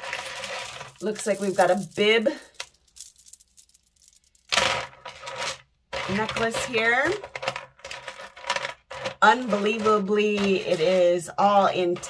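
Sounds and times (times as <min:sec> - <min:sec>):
bead necklace rattling on plastic tray: 0:00.0 - 0:12.0.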